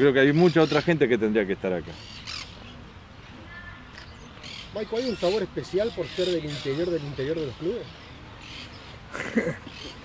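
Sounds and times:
harsh bird squawk: 1.9s - 2.8s.

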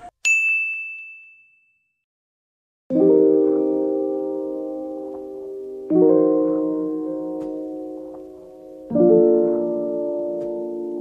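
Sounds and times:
high-pitched ding: 0.3s - 1.9s.

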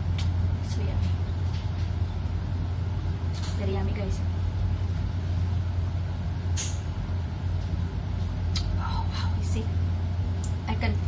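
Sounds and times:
exhaust fan humming: 0.0s - 11.0s.

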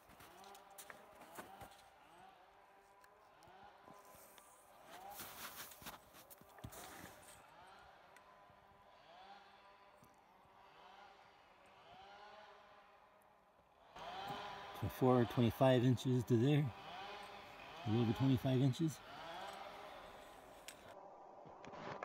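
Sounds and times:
person moving crunching rustling: 0.0s - 1.9s, 4.0s - 7.4s.

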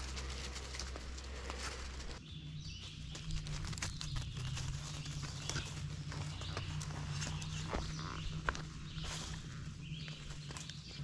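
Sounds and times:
dog running through dry leaves: 0.0s - 2.2s
steady low hum: 0.0s - 11.0s.

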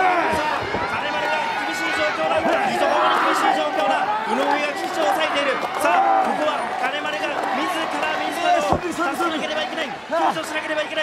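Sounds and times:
crowd shouting: 0.0s - 11.0s.

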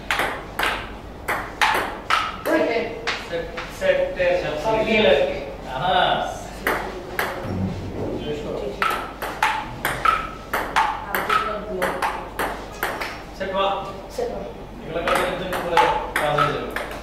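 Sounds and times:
ball bouncing on table: 0.1s - 3.2s, 8.8s - 13.2s, 15.0s - 17.0s
ping pong ball clicking on paddles: 0.1s - 3.7s, 6.6s - 7.4s, 8.8s - 13.2s, 15.0s - 17.0s.

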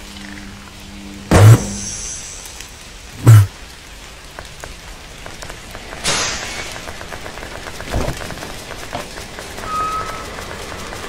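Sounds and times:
heavy low thump: 1.3s - 1.9s, 3.2s - 3.5s
rush of hiss: 1.4s - 3.5s.

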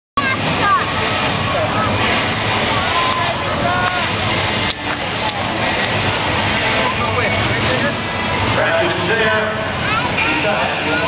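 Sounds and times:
crowd voices and shouts: 0.2s - 11.0s
truck engines running: 0.2s - 11.0s.

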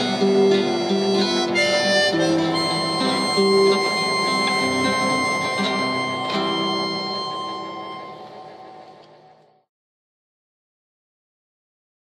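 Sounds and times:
harmonica: 0.0s - 8.9s
classical guitar chord: 0.0s - 9.2s.

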